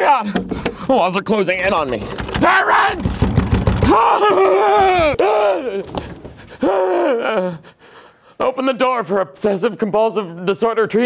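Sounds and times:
man wailing in panic: 2.4s - 5.9s, 6.6s - 7.6s
sharp knock: 3.0s - 4.0s.

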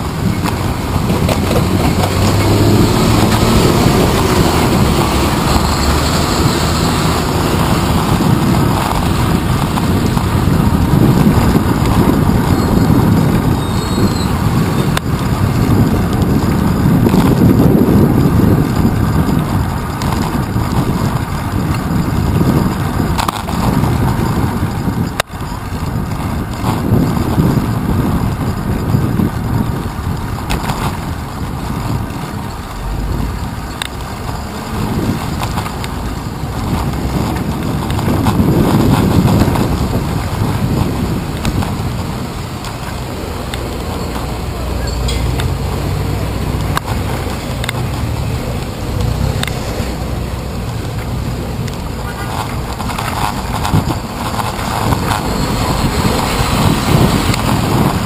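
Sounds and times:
road rumble: 0.0s - 58.0s
rushing wind: 0.0s - 58.0s.

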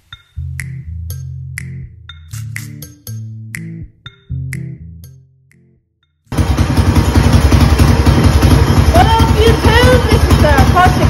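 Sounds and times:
music: 0.0s - 6.3s
mini bike engine running: 6.3s - 11.0s.

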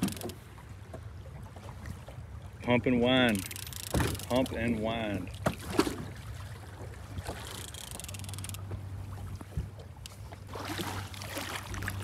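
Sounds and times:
water sloshing against boat: 0.0s - 12.0s.

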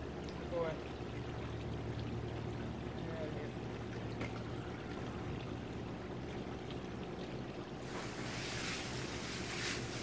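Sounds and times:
low steady hum: 0.0s - 10.0s
water running: 1.4s - 10.0s.

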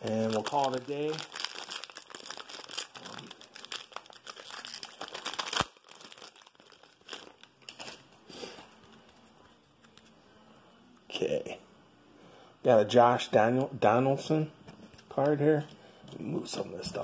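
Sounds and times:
plastic wrapper crinkling: 0.0s - 8.1s
wrapper tearing: 0.0s - 8.1s
cards rustling: 0.0s - 10.2s.

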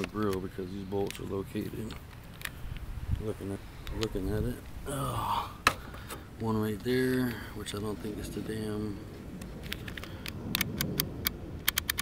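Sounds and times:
sharp light clicks: 0.0s - 2.9s, 9.4s - 12.0s.

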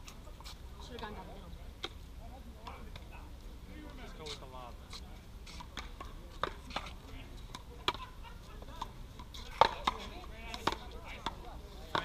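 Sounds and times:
paddles hitting rubber ball: 8.7s - 12.0s.

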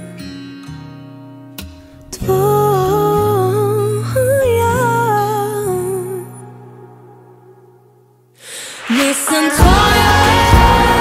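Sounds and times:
woman singing wordless melody: 2.2s - 7.7s, 8.9s - 11.0s.

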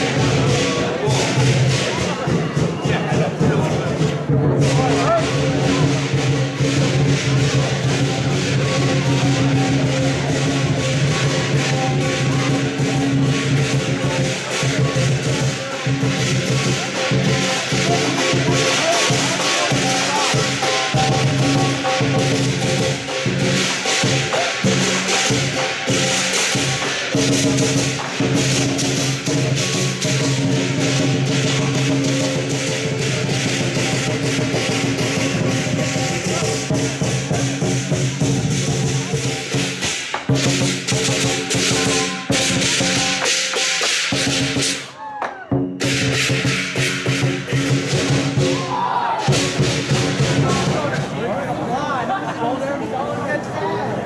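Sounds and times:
big drum beating: 0.0s - 44.9s, 45.5s - 51.4s
crashing cymbals: 0.0s - 45.0s, 45.7s - 51.0s.

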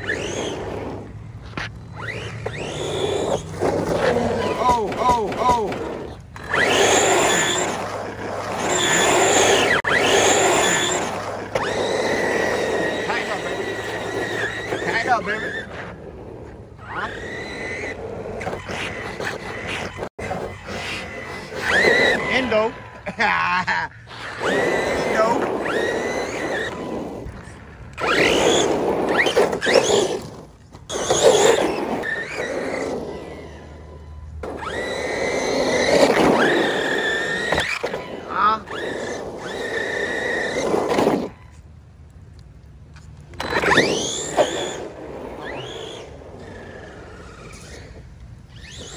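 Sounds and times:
electric motor whining: 0.0s - 23.1s, 24.1s - 41.4s, 43.4s - 48.9s
tyres on wet pavement: 0.0s - 48.9s.

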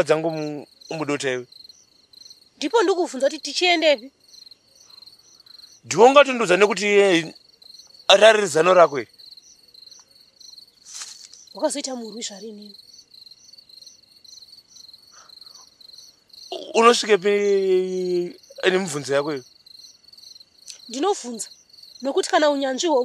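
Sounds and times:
conversation: 0.0s - 23.0s
crickets chirping: 0.0s - 23.0s.

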